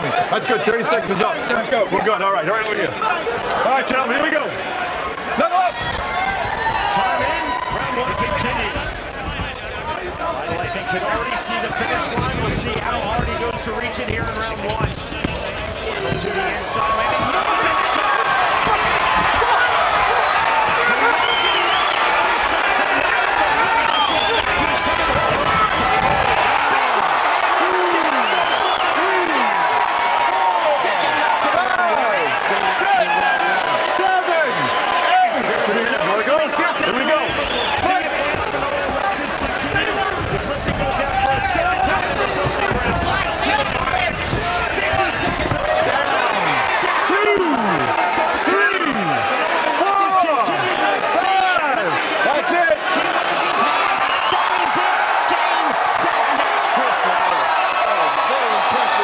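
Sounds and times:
crowd shouting and yelling: 0.0s - 59.0s.

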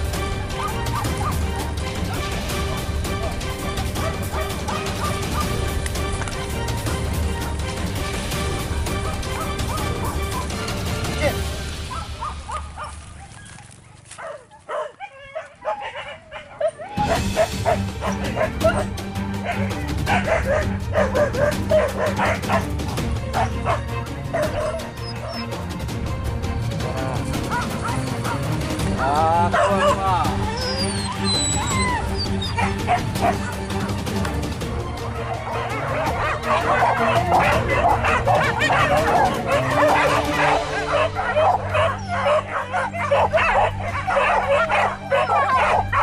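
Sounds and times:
dogs barking yelping and whining: 0.0s - 5.8s, 6.8s - 25.8s, 27.3s - 28.8s, 29.5s - 46.0s.

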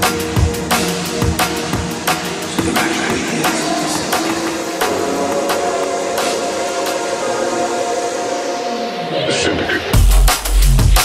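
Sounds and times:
held synth chord: 0.0s - 9.6s.

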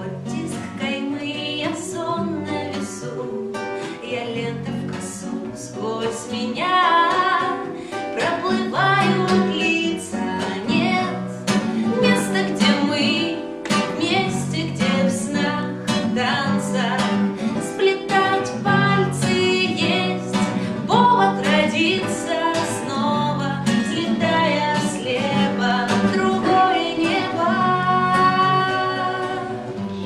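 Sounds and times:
strummed classical guitar: 0.0s - 30.0s
woman singing: 0.0s - 30.0s.

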